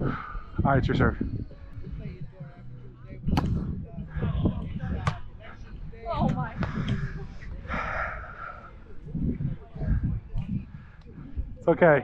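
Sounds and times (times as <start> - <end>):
muffled wind rumble: 0.0 - 12.0.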